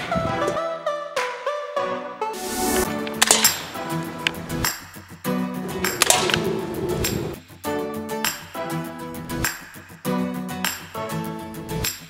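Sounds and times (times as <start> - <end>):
background music: 0.0 - 12.0
sharp clicks: 3.0 - 4.4, 5.8 - 7.3.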